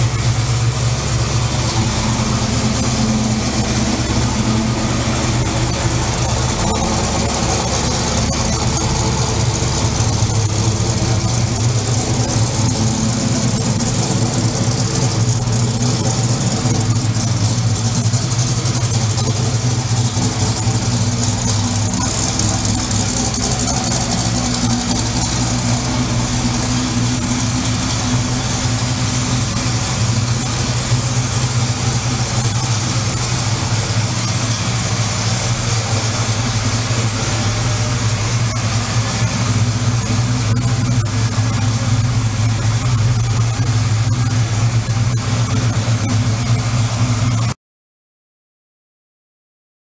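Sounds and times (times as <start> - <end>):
car engine idling: 0.0 - 47.6.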